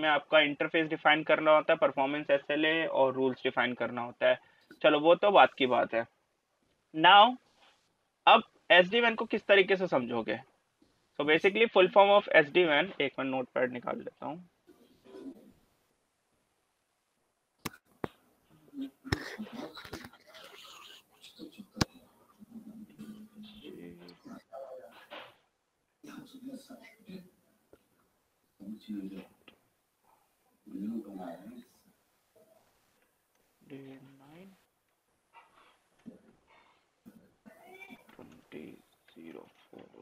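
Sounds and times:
faint voice murmuring: 18.6s - 25.1s, 26.0s - 27.3s, 28.6s - 29.2s, 30.7s - 31.6s
quiet low speech: 18.6s - 25.1s, 26.0s - 27.3s, 28.6s - 29.3s, 30.7s - 31.8s.

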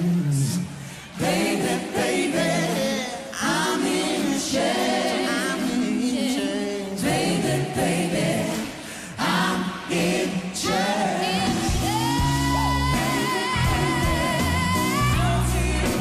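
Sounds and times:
man and woman singing duet: 0.0s - 16.0s.

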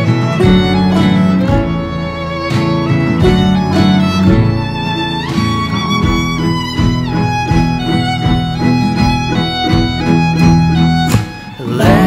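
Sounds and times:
fiddle melody with sliding notes: 0.0s - 12.0s
guitar strumming: 0.0s - 12.0s.

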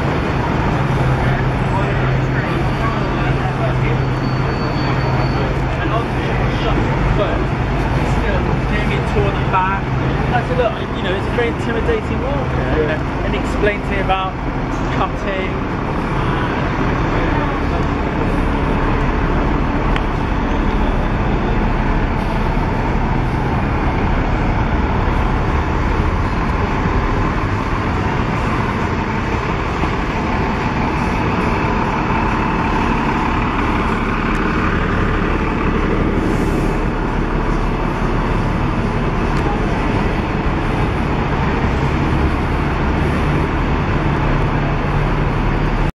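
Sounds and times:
bus engine rumble: 0.0s - 45.9s
road noise: 0.0s - 45.9s.

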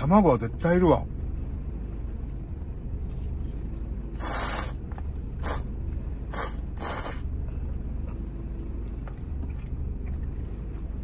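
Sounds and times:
low steady hum: 0.0s - 11.0s
noodles slurped: 4.1s - 4.8s, 5.4s - 5.7s, 6.3s - 7.2s.

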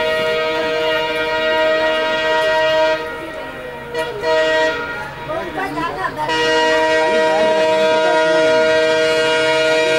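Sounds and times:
locomotive air horn blasts: 0.0s - 5.4s, 6.2s - 9.9s
train rumble: 0.0s - 9.9s.

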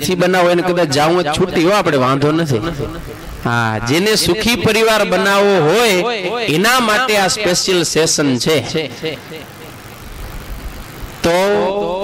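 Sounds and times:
man talking into a microphone: 0.0s - 9.4s, 11.2s - 12.0s
steady background hiss: 0.0s - 12.0s.

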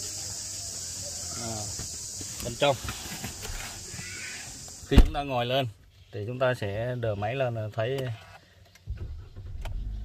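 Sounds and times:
car engine starting and running: 8.9s - 10.0s.

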